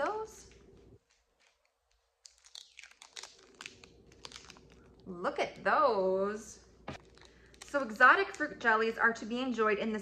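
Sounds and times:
plastic candy wrappers crinkling: 0.4s - 5.2s, 6.9s - 8.6s.

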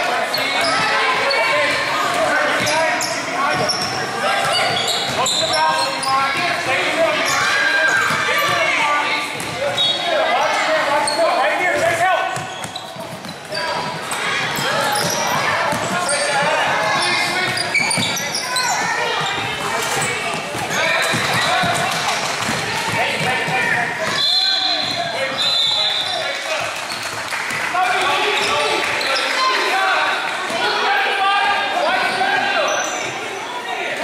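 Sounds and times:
people shouting and chattering: 0.0s - 34.0s.

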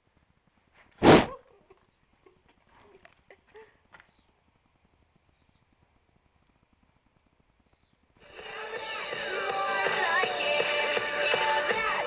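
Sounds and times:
horse snorting: 1.0s - 1.4s.

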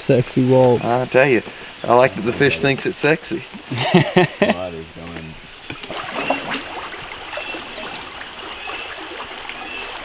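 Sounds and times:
stream water rushing: 0.0s - 10.0s
small water splashes: 5.2s - 10.0s.

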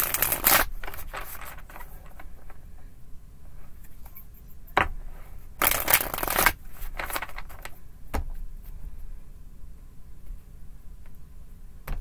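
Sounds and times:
cards being shuffled: 0.0s - 2.6s, 5.6s - 7.8s.

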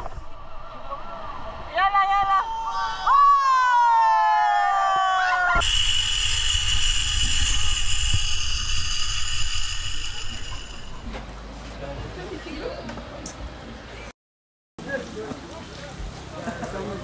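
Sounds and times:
zipline pulleys whining on cable: 2.7s - 11.4s
wind rumble: 5.4s - 11.6s.

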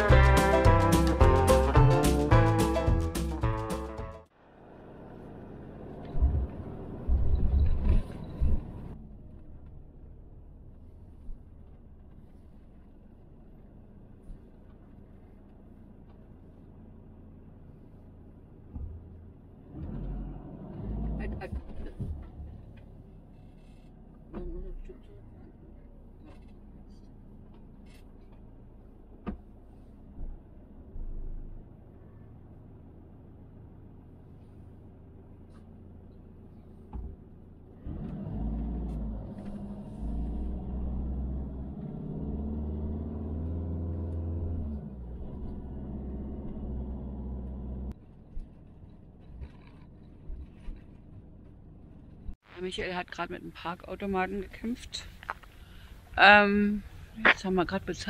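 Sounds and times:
engine and tyre rumble: 0.0s - 58.0s.

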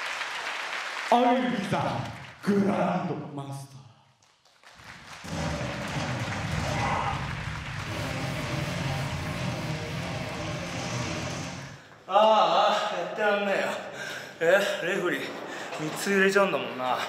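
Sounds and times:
crowd clapping: 0.0s - 2.5s, 4.2s - 11.4s.

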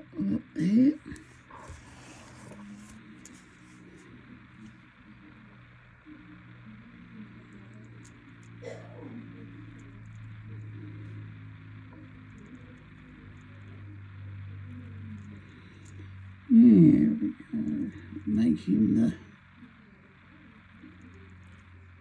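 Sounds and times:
faint television music: 0.0s - 22.0s.

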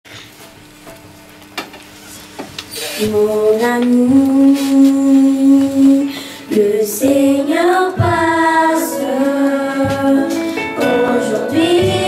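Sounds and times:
choir singing: 3.1s - 12.0s.

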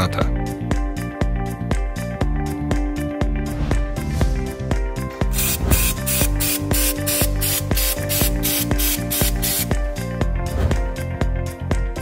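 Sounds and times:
aerosol spray hissing: 5.3s - 9.8s.

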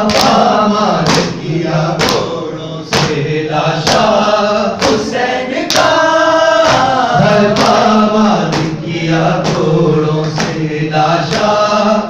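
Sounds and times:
group chanting a lament: 0.0s - 12.0s
rhythmic chest-beating slaps: 0.0s - 12.0s.

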